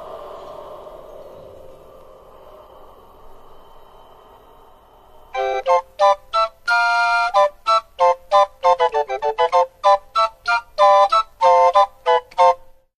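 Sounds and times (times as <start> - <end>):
organ-like keyboard notes: 5.4 - 12.7.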